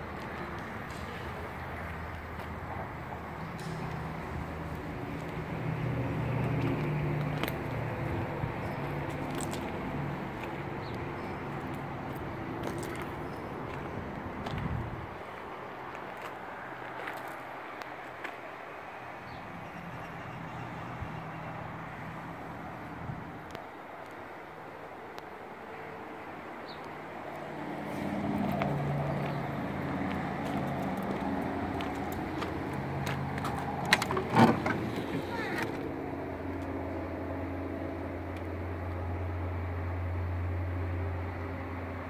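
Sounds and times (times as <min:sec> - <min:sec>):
low engine hum: 0:00.0 - 0:17.8, 0:18.8 - 0:42.0.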